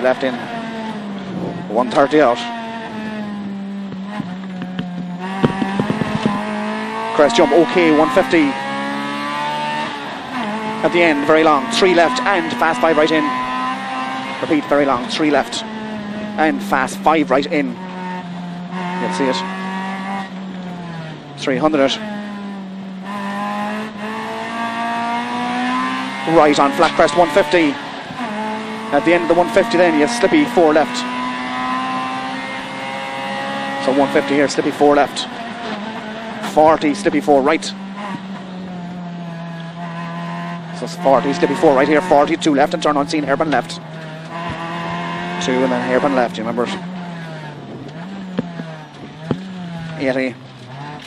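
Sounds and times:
car engine revving: 0.0 - 51.0
sharp knocks: 3.9 - 6.6, 47.9 - 49.5.

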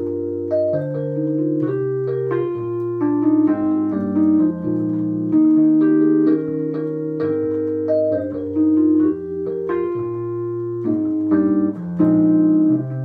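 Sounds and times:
keyboard playing chords: 0.0 - 13.0.

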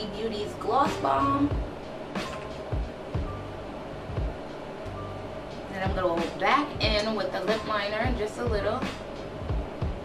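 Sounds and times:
background music with soft beats: 0.0 - 10.0.

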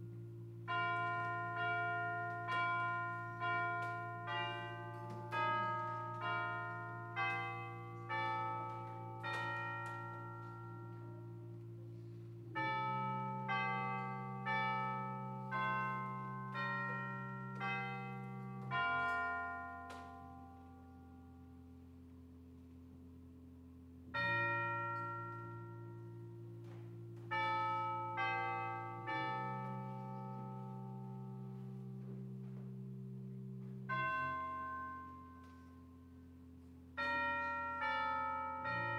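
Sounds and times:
church chimes playing tune: 0.0 - 38.9
held low chord: 0.0 - 38.9.

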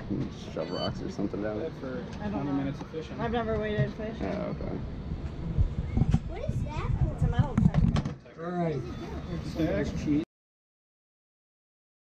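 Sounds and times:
indistinct voices talking: 0.2 - 1.8.

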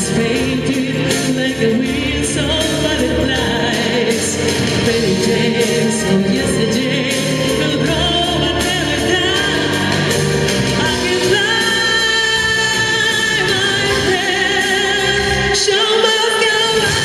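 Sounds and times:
instrumental accompaniment: 0.0 - 17.0
woman singing into microphone: 0.0 - 17.0.

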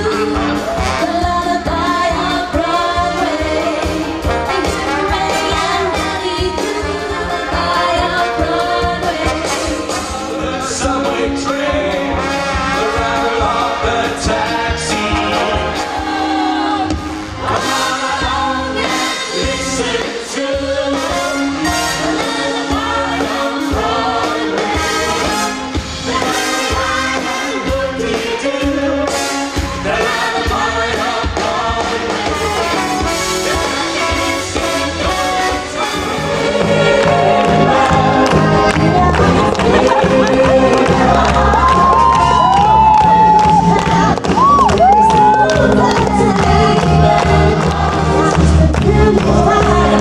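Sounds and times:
drum kit beat: 0.0 - 50.0
live band music: 0.0 - 50.0
people singing into microphones: 0.0 - 50.0
electric bass: 36.1 - 50.0.

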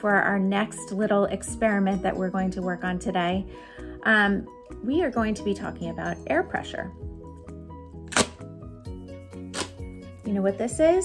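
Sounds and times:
background music with held notes: 0.0 - 11.0
party blower puff: 8.1 - 8.5, 9.4 - 9.8.

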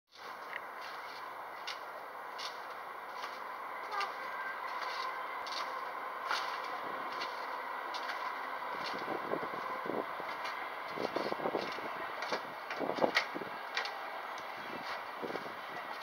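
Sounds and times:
outdoor background noise: 0.1 - 16.0.

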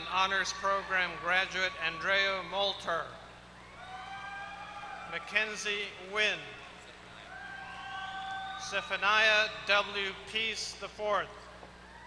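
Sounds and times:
long high-pitched audience call: 0.0 - 9.9.

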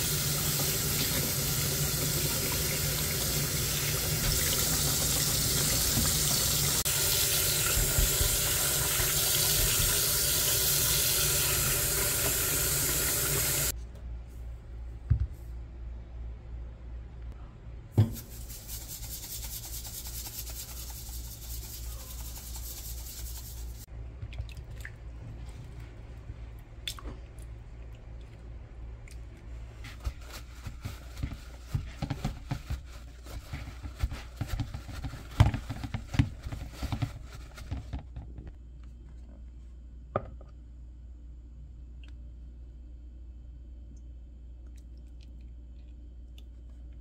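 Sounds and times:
tap water running into a sink: 0.0 - 13.7
paper towel rubbing wet chicken: 18.2 - 23.9, 29.6 - 38.0.

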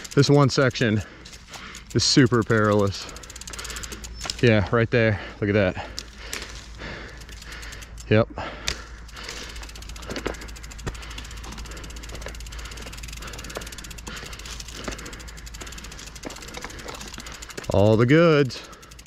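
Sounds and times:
bike freehub clicking: 0.0 - 19.0.

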